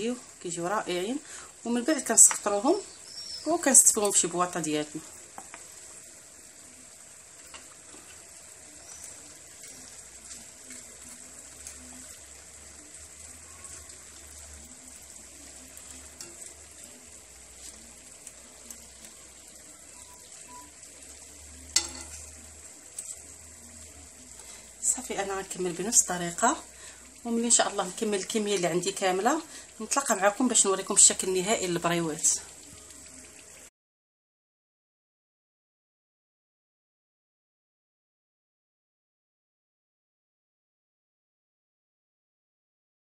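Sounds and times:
food deep-frying in oil sizzle: 0.0s - 33.7s.

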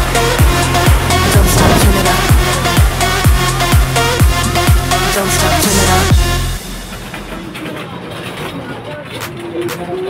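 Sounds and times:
parking lot noise: 0.0s - 10.0s
people's voices: 0.0s - 10.0s.

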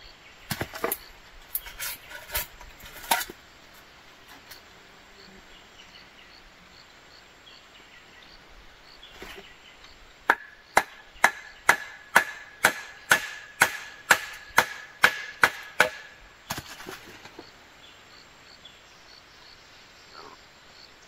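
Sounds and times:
machete chopping bamboo: 0.5s - 3.3s, 10.3s - 17.2s.

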